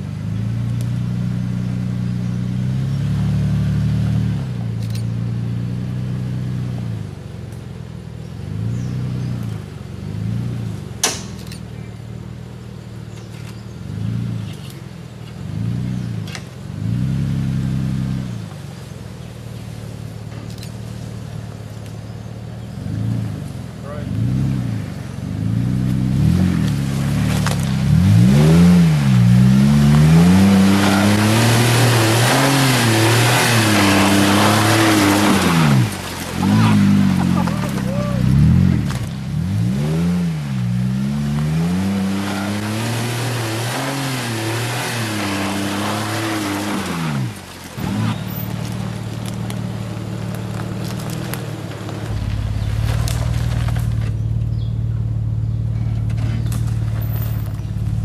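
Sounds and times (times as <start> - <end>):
engine revving: 22.6 - 58.0
loud rushing noise: 52.0 - 54.6.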